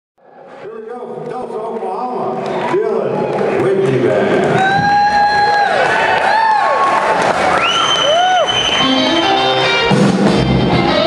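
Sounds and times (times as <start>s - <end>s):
audience applauding: 1.8s - 9.6s
crowd cheering and whooping: 4.4s - 9.8s
long high whistle: 7.5s - 9.3s.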